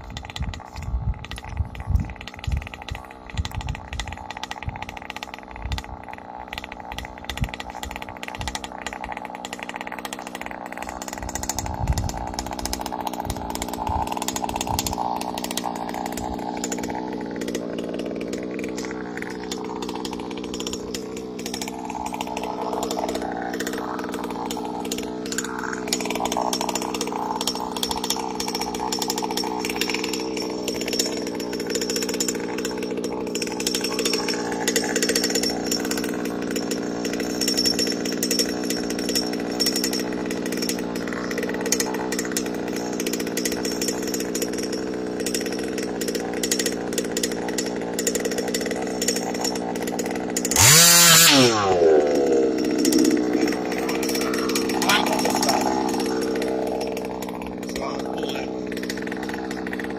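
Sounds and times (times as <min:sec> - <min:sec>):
two-stroke engine idling: 0:00.0 - 0:59.9.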